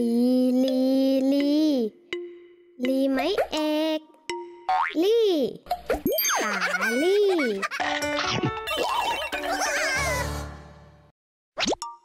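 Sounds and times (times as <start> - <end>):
children's music: 0.0 - 11.1.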